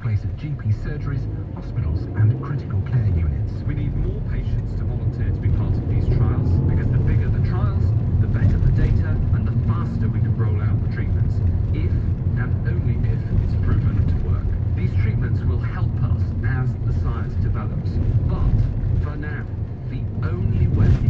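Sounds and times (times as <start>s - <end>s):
car engine and tyres rumbling: 0.0s - 21.0s
faint speech from car radio: 0.0s - 21.0s.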